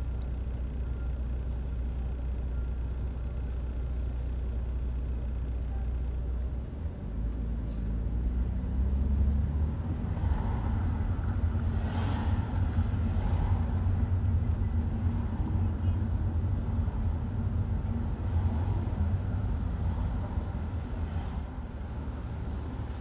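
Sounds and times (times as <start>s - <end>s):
passing traffic: 0.0s - 2.4s, 3.0s - 23.0s
car driving rumble: 0.0s - 23.0s.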